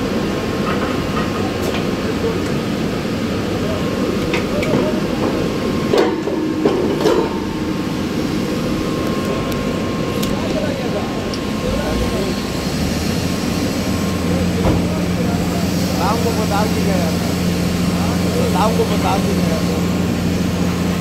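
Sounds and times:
faint machine whine: 0:00.0 - 0:21.0
machinery humming: 0:00.0 - 0:21.0.

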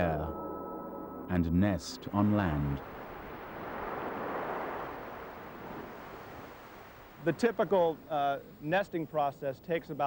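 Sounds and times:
ocean surf washing onto beach: 0:01.8 - 0:08.7.

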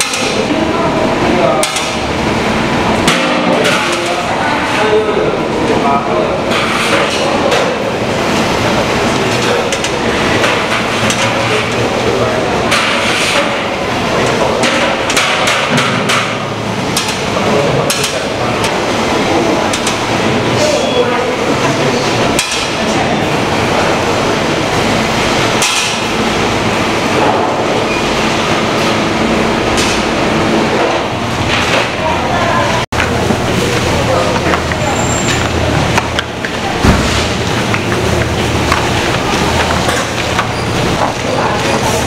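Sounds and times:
steady machine hum: 0:00.0 - 0:42.0
plastic trays and metal racks clattering: 0:02.9 - 0:28.9, 0:33.0 - 0:42.0.

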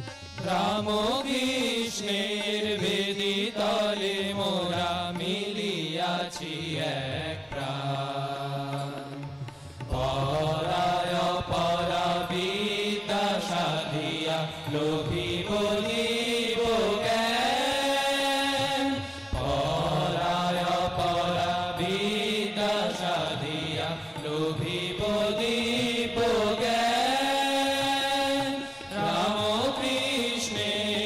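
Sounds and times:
harmonium drone: 0:00.0 - 0:31.0
young men singing in unison: 0:00.0 - 0:31.0.

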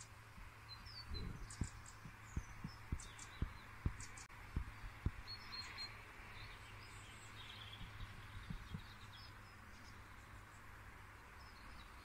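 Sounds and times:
birds chirping: 0:00.0 - 0:12.0
steady low hum: 0:00.0 - 0:12.0
soft low thumps: 0:00.4 - 0:05.4, 0:07.7 - 0:09.0.

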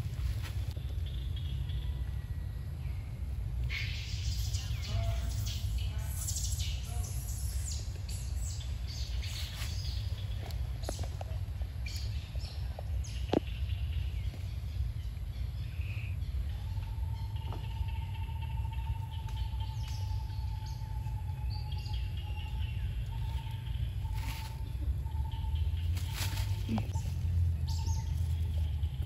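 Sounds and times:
low rumble: 0:00.0 - 0:29.0
steady high hum: 0:00.0 - 0:29.0
bird chirps: 0:11.8 - 0:29.0.

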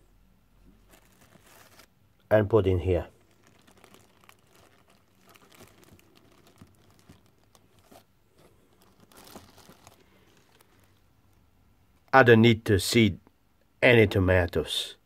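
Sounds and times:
rustling in plant pot: 0:00.6 - 0:01.9, 0:02.8 - 0:11.1.

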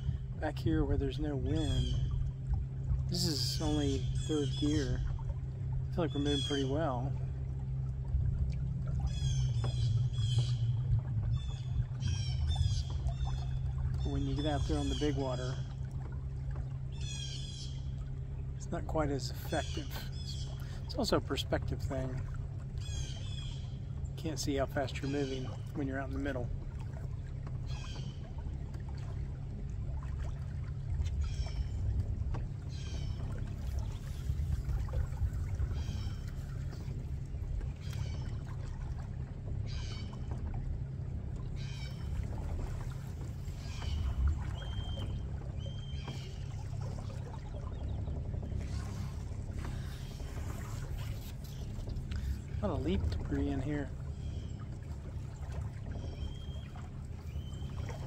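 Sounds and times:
electric boat motor rumble: 0:00.0 - 0:58.0
water against hull: 0:00.0 - 0:58.0.

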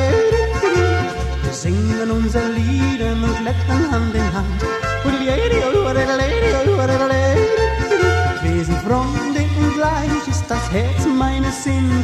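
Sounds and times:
person yodeling: 0:00.0 - 0:01.2, 0:05.1 - 0:09.8
pulsing bass beat: 0:00.0 - 0:12.0.

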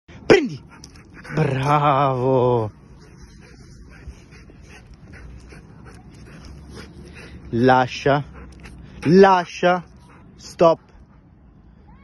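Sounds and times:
puppy breathing: 0:02.7 - 0:11.4.

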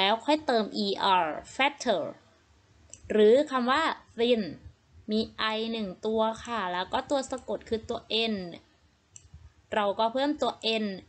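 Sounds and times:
woman speaking: 0:00.0 - 0:02.3, 0:03.0 - 0:08.8, 0:09.7 - 0:11.0.

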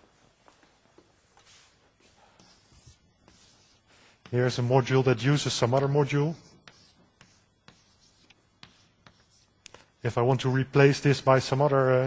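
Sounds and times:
writing scratching on a board: 0:02.4 - 0:04.5, 0:06.4 - 0:09.7.

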